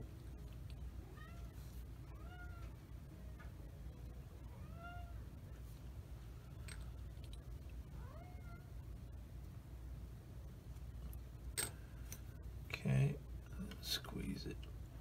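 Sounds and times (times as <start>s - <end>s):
cat meowing: 1.1s - 2.8s, 4.6s - 5.2s, 8.0s - 8.7s.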